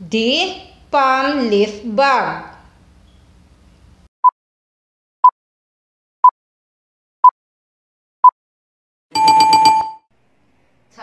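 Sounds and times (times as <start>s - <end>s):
pulsing electronic alarm ring: 9.2s - 10.0s.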